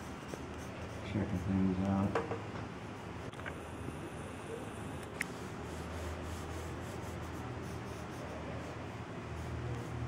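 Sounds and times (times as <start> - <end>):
pencil scratching on paper: 0.0 - 2.0, 5.3 - 10.0.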